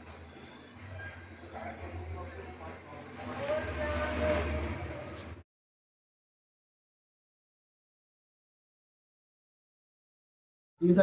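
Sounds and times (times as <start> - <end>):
rapid pulsing high chirp: 0.0 - 5.4
murmur of voices: 0.1 - 5.4.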